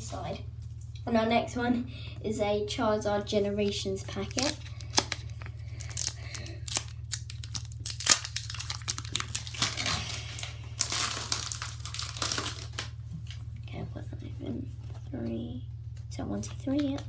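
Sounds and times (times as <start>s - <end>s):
steady low hum: 0.0s - 17.0s
foil wrapper tearing and crinkling: 4.1s - 12.9s.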